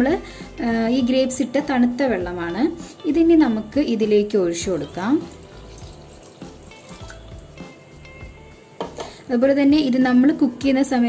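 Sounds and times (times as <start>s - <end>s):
water splashing into a pot: 4.8s - 7.4s.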